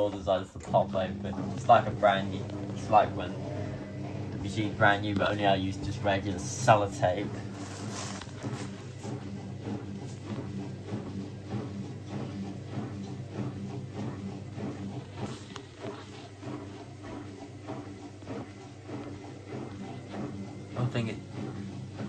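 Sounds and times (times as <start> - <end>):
washing machine motor hum: 0.0 - 22.0.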